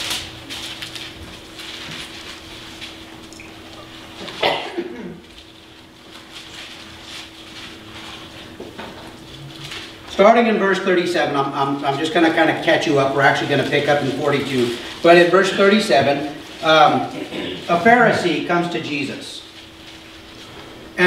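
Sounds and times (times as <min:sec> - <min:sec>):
pages being turned: 0:00.0 - 0:03.5
paper rustling: 0:00.0 - 0:04.4, 0:05.2 - 0:20.8
electrical hum: 0:00.0 - 0:21.0.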